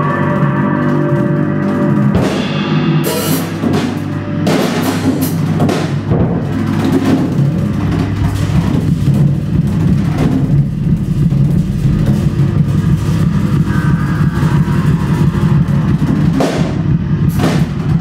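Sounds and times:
cymbal crashes: 0:00.0 - 0:18.0
low drone from bass and electronics: 0:00.0 - 0:18.0
free-time drumming: 0:01.4 - 0:18.0.

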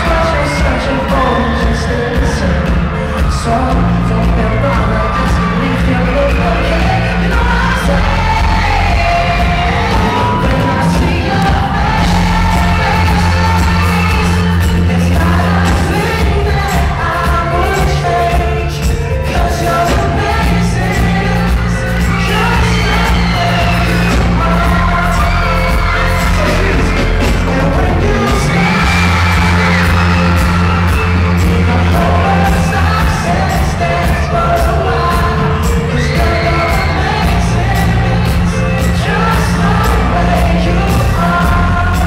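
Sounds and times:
drums: 0:00.0 - 0:42.0
electric guitar: 0:00.0 - 0:42.0
heavy bass line: 0:00.0 - 0:42.0
keyboard: 0:00.0 - 0:42.0
man singing: 0:00.0 - 0:42.0.

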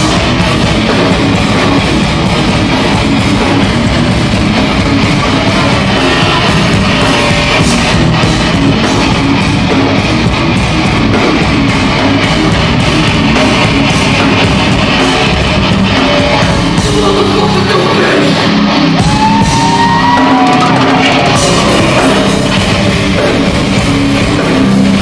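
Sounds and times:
heavy rock band playing: 0:00.0 - 0:25.0.

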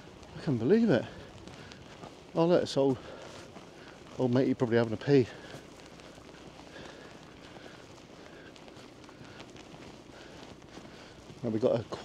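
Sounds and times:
footsteps on tarmac: 0:00.0 - 0:12.0.

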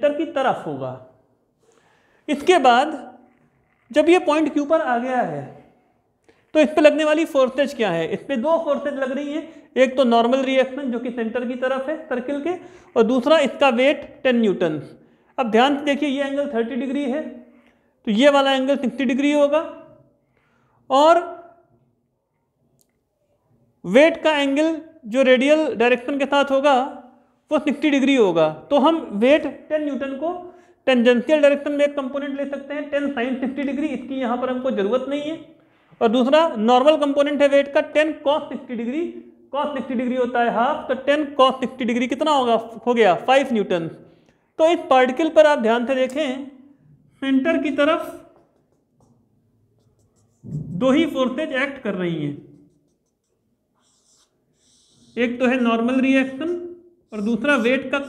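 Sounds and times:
man speaking: 0:02.3 - 0:03.3, 0:06.5 - 0:20.0, 0:50.3 - 0:52.8, 0:55.0 - 0:58.0
marker on whiteboard: 0:47.5 - 0:58.0.

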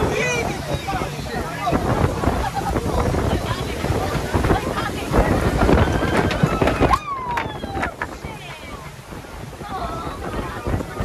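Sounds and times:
choppy sea rushing: 0:00.0 - 0:11.0
wind buffeting microphone: 0:00.0 - 0:11.0.

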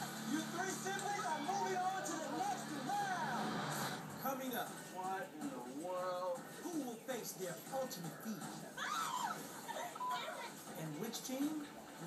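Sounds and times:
game-show music from tv: 0:00.0 - 0:12.0
voices from tv: 0:00.0 - 0:12.0.

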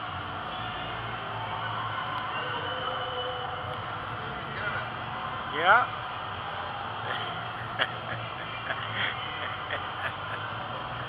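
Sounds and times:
hall background noise: 0:00.0 - 0:11.0.

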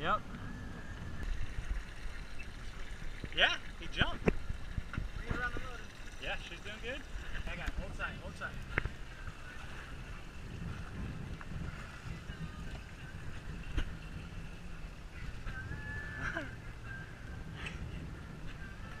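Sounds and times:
wind and water rumble: 0:00.0 - 0:19.0.

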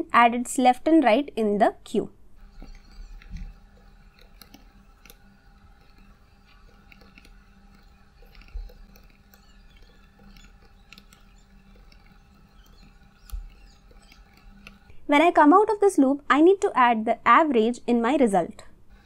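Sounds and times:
low steady hum: 0:00.0 - 0:18.0
computer keyboard typing: 0:02.4 - 0:14.9.

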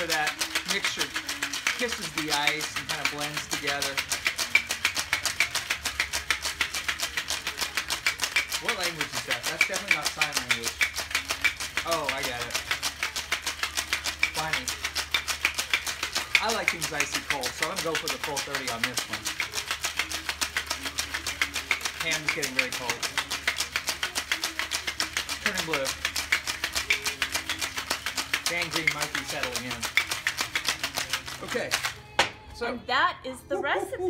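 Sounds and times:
ice rattling in cocktail shaker: 0:00.0 - 0:32.0.

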